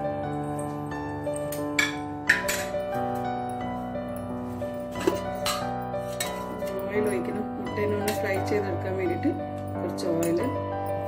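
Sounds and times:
background music: 0:00.0 - 0:11.0
steel cookware clinking: 0:01.5 - 0:03.1, 0:04.9 - 0:08.6.

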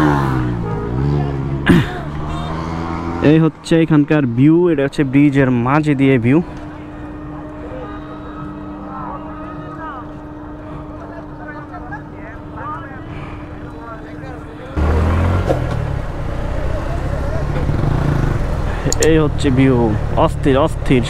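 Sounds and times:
motorbike engine rumble: 0:00.0 - 0:21.0.

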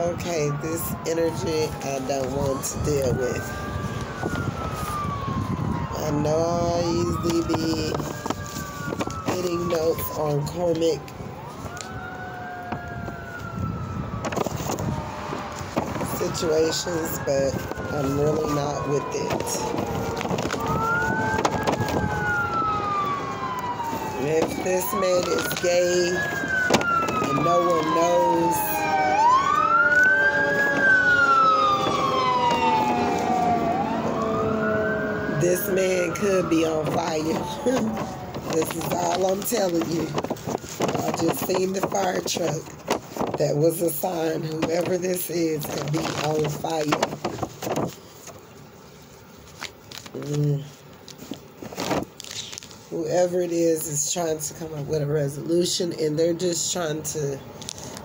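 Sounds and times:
siren wailing: 0:00.0 - 0:48.0
low rumble of wind: 0:00.0 - 0:58.0.

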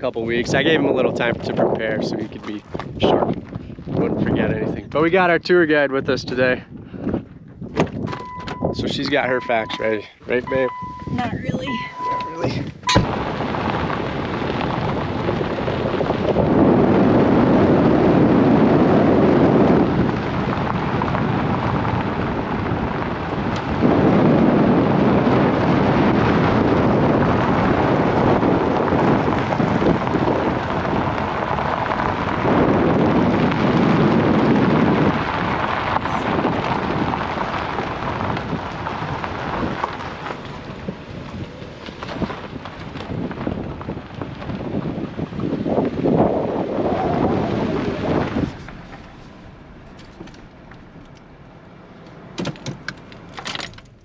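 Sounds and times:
tyres on gravel road: 0:00.0 - 0:54.0
wind buffeting microphone: 0:00.0 - 0:54.0.

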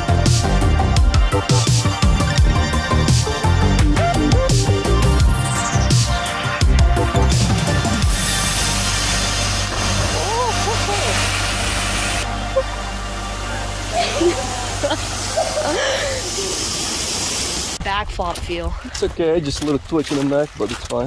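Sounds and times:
music playing: 0:00.0 - 0:17.1
waterfall rushing: 0:08.0 - 0:17.8
people shouting and whooping: 0:10.1 - 0:11.2.

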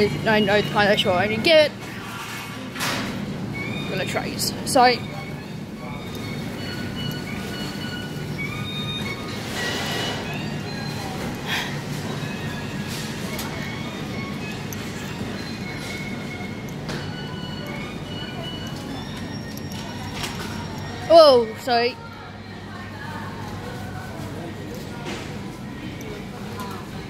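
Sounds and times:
faint in-store background music: 0:00.0 - 0:27.0
shopping trolley wheels rattling: 0:00.0 - 0:27.0.

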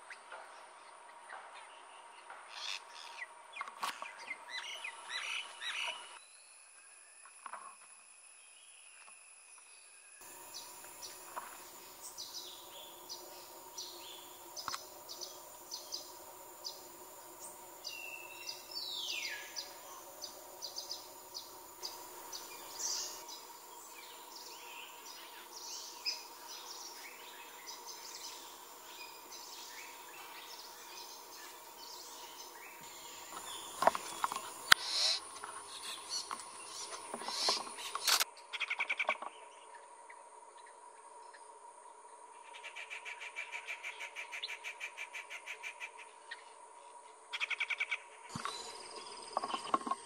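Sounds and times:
birds chirping: 0:01.0 - 0:06.2, 0:10.2 - 0:39.5, 0:47.4 - 0:50.0
steady low drone: 0:10.2 - 0:37.9.

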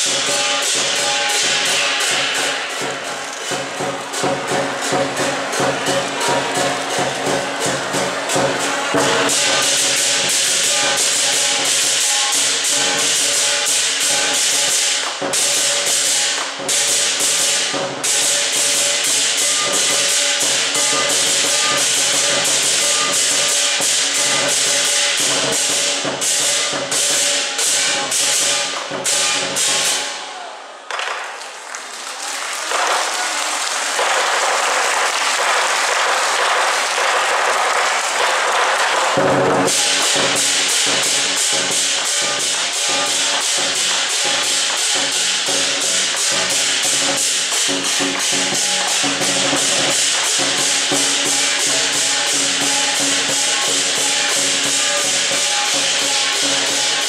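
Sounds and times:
large drum beating: 0:00.0 - 0:30.1
hand cymbals clashing: 0:00.0 - 0:30.4, 0:35.8 - 0:57.0.

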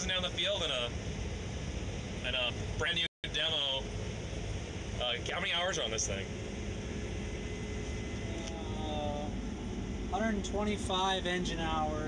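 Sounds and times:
combine harvester droning: 0:00.0 - 0:12.0.

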